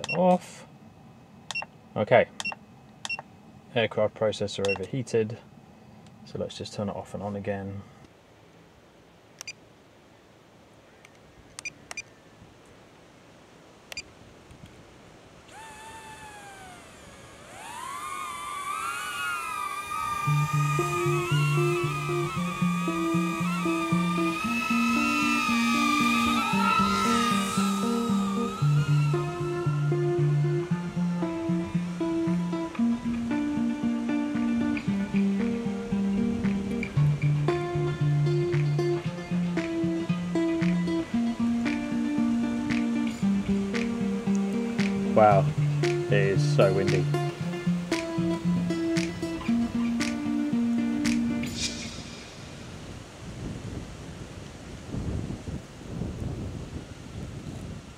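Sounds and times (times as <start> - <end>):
faint clicks: 11.0 - 12.1
drone propellers whining: 15.5 - 45.0
guitar background music: 20.1 - 52.5.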